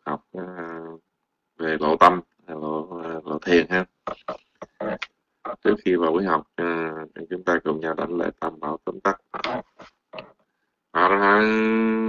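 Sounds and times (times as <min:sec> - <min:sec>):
man making vocal sounds: 0:00.0 - 0:01.0, 0:01.8 - 0:10.3.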